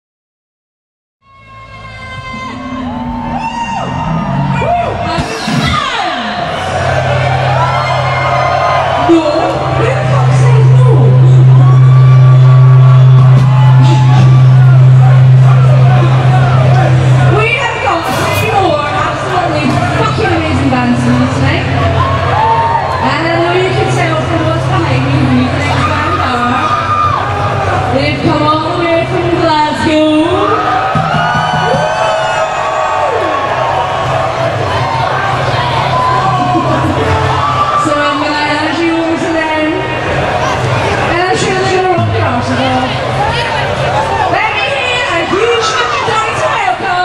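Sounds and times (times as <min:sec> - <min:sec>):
low bass drone: 0:01.3 - 0:44.4.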